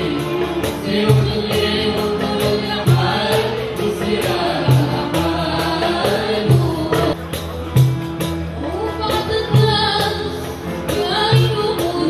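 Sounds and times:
oud: 0:00.0 - 0:12.0.

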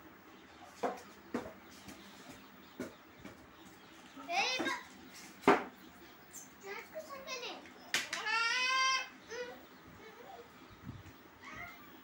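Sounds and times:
small child babbling: 0:08.2 - 0:10.6, 0:11.4 - 0:12.0.

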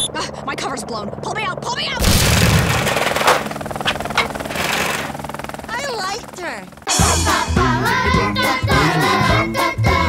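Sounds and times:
rapid jackhammer-like rattling: 0:02.3 - 0:06.8.

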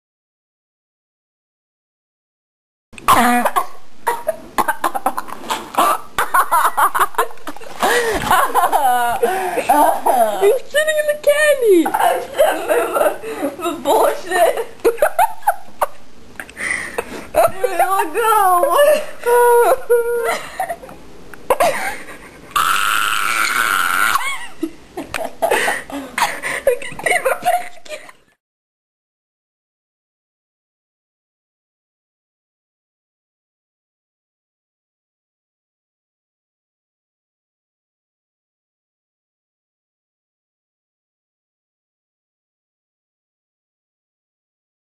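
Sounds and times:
young women laughing: 0:03.2 - 0:10.6, 0:11.3 - 0:22.7, 0:23.3 - 0:28.4
person's falling vocal sound: 0:22.5 - 0:24.4.

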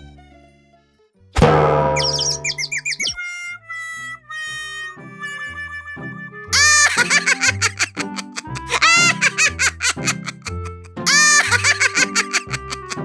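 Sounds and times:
cartoon background music: 0:00.0 - 0:13.0
bouncy chirping sound effects: 0:01.4 - 0:03.4
cartoon character giggling: 0:06.6 - 0:13.0.

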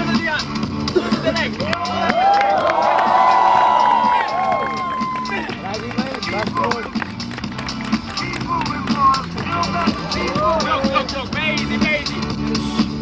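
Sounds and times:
background music: 0:00.0 - 0:13.0
crowd voices and shouts: 0:01.3 - 0:13.0.

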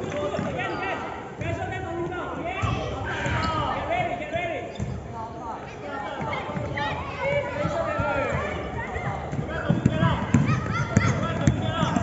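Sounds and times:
basketball bouncing on court: 0:06.2 - 0:12.0.

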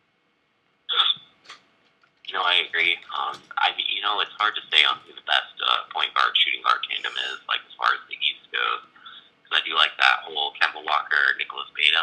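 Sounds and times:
person's short vocal sound: 0:06.9 - 0:07.4.

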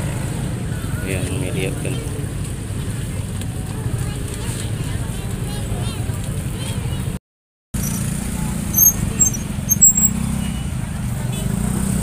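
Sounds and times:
crowd chatter: 0:00.4 - 0:07.2, 0:08.2 - 0:12.0
motorcycle engine at low speed: 0:07.8 - 0:12.0.

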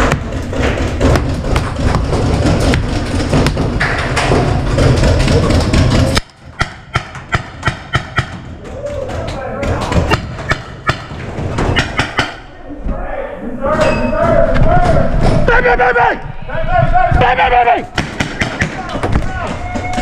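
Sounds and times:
voices: 0:08.6 - 0:10.2, 0:12.4 - 0:20.0.

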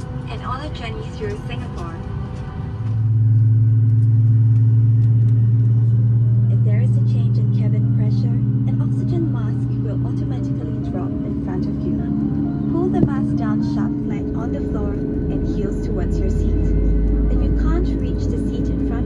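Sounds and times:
airliner taxiing hum from cabin: 0:00.0 - 0:19.0.

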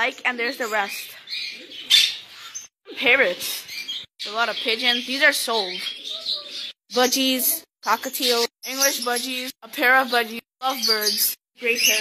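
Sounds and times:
birds chattering and squawking: 0:00.0 - 0:12.0.

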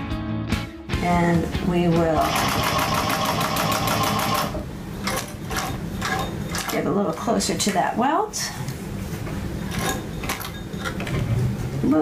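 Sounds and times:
sewing machine stitching: 0:02.2 - 0:04.6.

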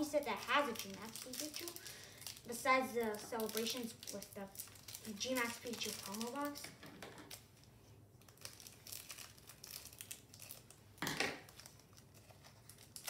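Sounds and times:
foil wrapper crinkling: 0:00.0 - 0:13.0.

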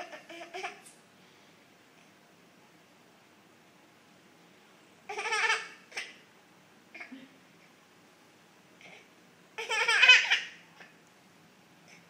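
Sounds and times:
baby laughing: 0:00.0 - 0:00.9, 0:05.1 - 0:06.2, 0:09.6 - 0:10.9.

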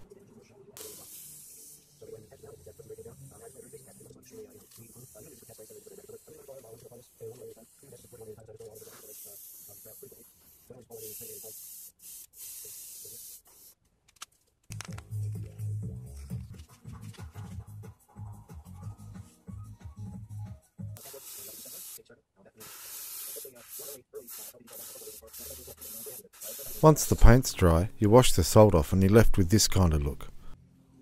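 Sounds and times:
airbrush spraying in hissing bursts: 0:00.8 - 0:13.8, 0:21.0 - 0:22.0, 0:22.6 - 0:27.4.

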